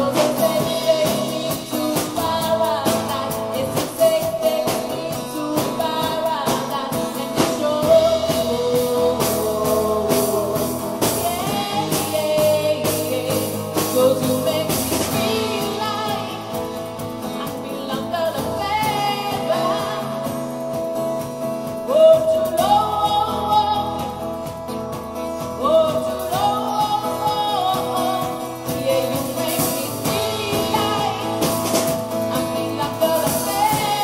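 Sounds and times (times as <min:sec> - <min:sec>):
rock band with guitar: 0:00.0 - 0:34.0
woman singing into a microphone: 0:00.0 - 0:34.0.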